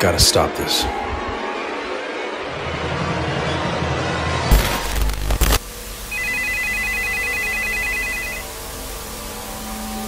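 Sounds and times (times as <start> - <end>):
electronic telephone ringer: 6.1 - 8.5.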